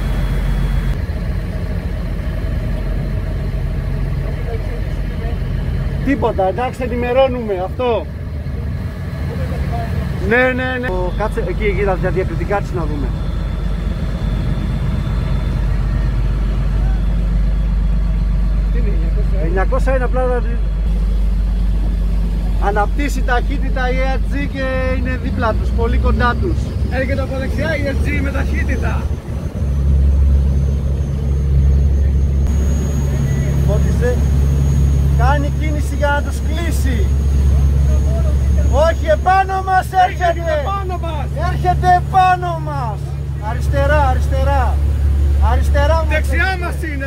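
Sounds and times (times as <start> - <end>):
boat engine rumble: 0.0 - 47.0.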